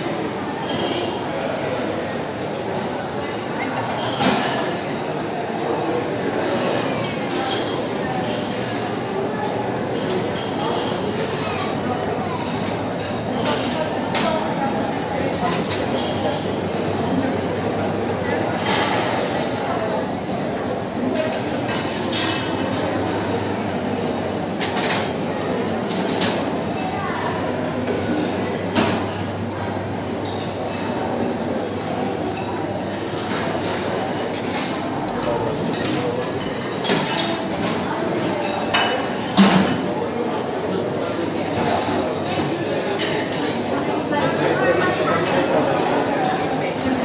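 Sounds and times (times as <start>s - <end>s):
babble of voices: 0.0s - 47.0s
kitchen noise: 0.0s - 47.0s
dishes and cutlery clinking: 9.4s - 16.6s, 21.0s - 23.4s, 25.9s - 29.4s, 32.2s - 40.0s.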